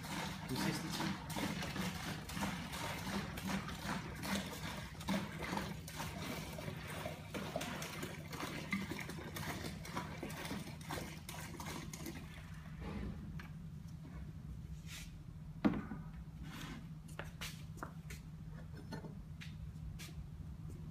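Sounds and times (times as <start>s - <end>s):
liquid pouring into a pail: 0.0s - 12.8s.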